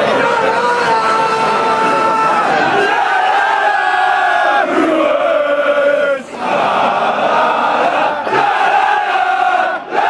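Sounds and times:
football crowd chanting: 0.0 - 10.0.

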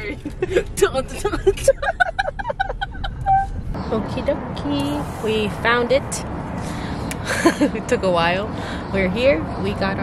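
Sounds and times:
woman laughing: 0.0 - 3.5, 7.2 - 7.8
car rumble: 0.0 - 10.0.

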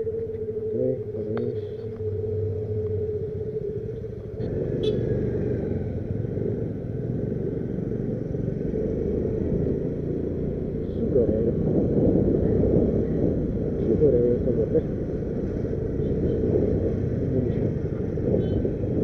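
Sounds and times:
motorcycle engine rumble: 0.0 - 19.0
steady hum: 0.0 - 19.0
wind on microphone: 8.4 - 19.0.

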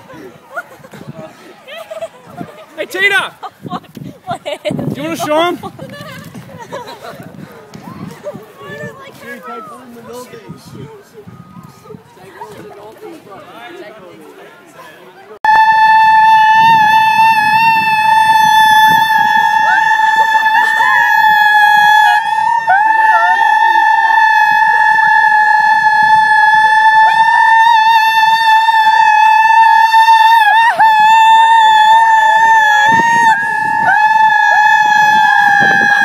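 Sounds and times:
laughter: 0.0 - 2.8, 3.4 - 7.4
children shouting and yelping: 0.0 - 13.4, 16.1 - 36.0
faint voices: 0.0 - 36.0
loud high-pitched tone: 15.5 - 21.0.

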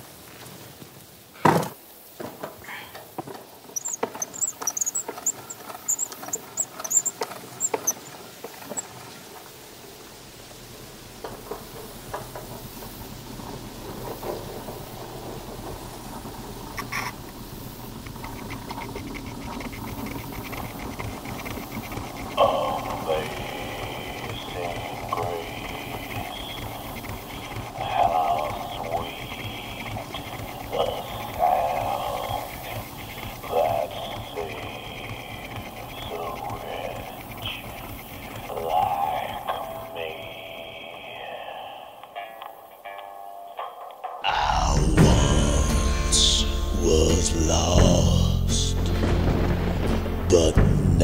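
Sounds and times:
record surface crackle: 3.2 - 44.2
short high squeaks: 3.7 - 8.9
old recorded voice from gramophone: 22.2 - 42.4.

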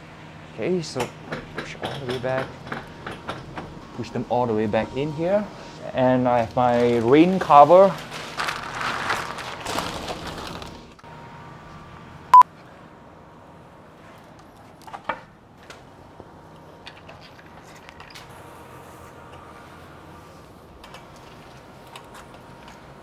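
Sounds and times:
plastic cover rustling: 6.3 - 11.0.

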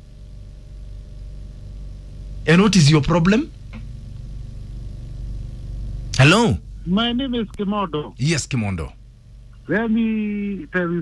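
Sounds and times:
phone line buzzing hum: 0.0 - 11.0.

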